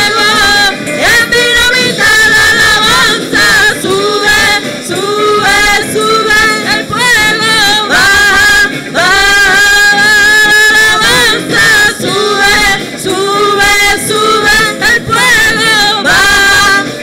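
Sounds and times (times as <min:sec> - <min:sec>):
women singing worship song: 0:00.0 - 0:17.0.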